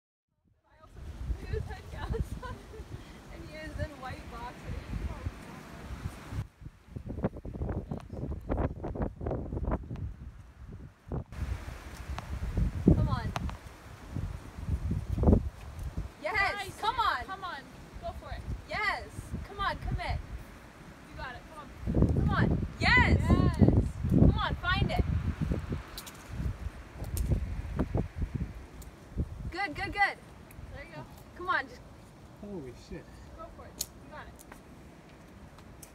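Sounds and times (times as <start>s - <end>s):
wind buffeting microphone: 0.8s - 31.9s.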